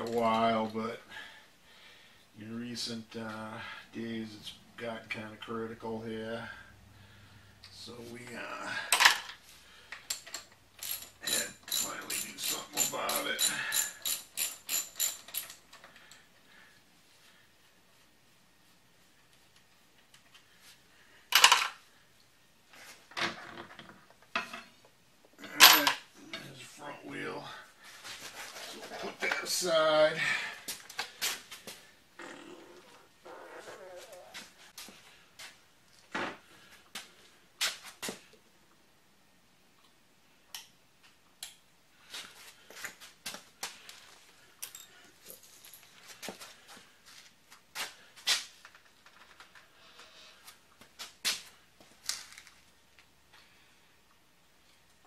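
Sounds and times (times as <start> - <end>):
metal parts clanking: 10.1 - 15.6.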